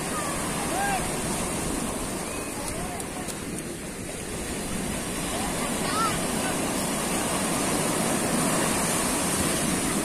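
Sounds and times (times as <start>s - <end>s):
waves washing up beach: 0.0s - 10.0s.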